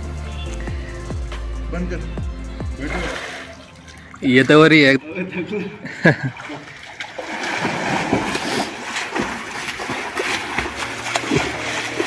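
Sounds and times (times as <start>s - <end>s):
water splashing from swimming: 2.8s - 4.9s, 6.1s - 12.0s.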